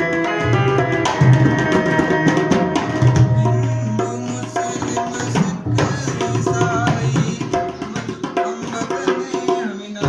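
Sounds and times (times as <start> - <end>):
keyboard melody: 0.0 - 4.7
dholak drum beats: 0.0 - 10.0.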